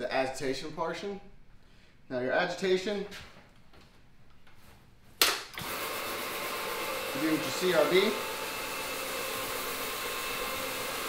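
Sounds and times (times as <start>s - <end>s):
floor scrubbing machine running: 5.6s - 11.0s.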